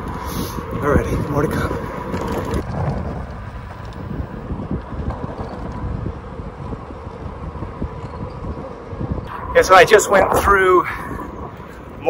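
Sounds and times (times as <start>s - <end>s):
tyres rumbling on tarmac: 0.0s - 9.3s
wind rushing over microphone: 0.0s - 12.0s.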